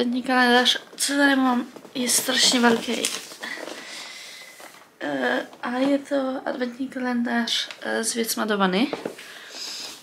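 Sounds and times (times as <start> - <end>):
cardboard rustling: 1.5 - 6.1.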